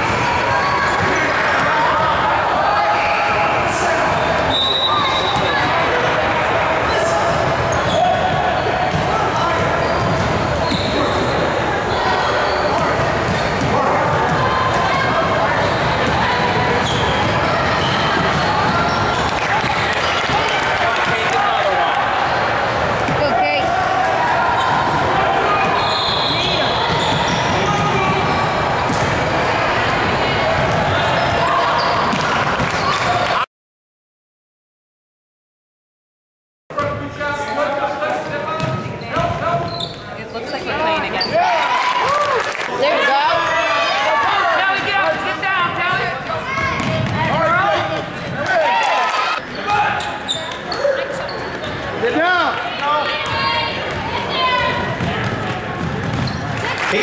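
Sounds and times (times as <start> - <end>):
echoing chatter: 0.0 - 33.5, 36.8 - 57.0
sneakers squeaking: 6.8 - 19.9, 24.5 - 33.1, 36.8 - 41.6, 45.2 - 48.5, 49.3 - 52.2, 53.1 - 56.9
basketball bouncing on wooden floor: 46.8 - 47.2, 55.0 - 56.4.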